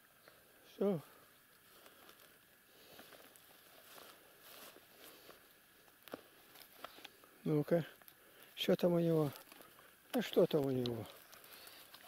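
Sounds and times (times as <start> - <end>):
grass rustling: 0.0 - 12.0.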